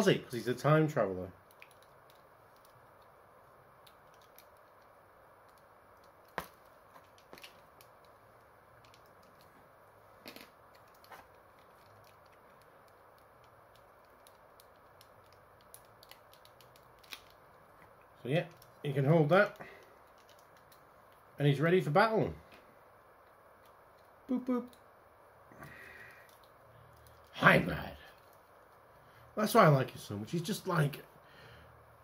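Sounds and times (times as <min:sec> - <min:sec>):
faint room hiss: 0:00.0 - 0:32.0.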